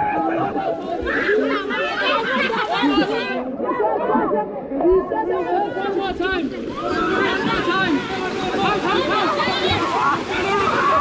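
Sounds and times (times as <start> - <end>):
children chattering and shouting: 0.0 - 11.0
water splashing: 0.0 - 11.0.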